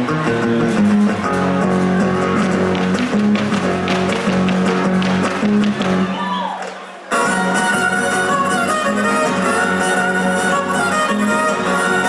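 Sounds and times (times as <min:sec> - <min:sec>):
strummed guitars: 0:00.0 - 0:06.2, 0:07.1 - 0:12.0.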